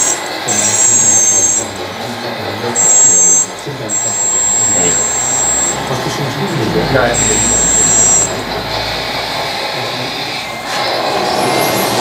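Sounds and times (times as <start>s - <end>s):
hydraulic pump electric whine: 2.6s - 11.0s.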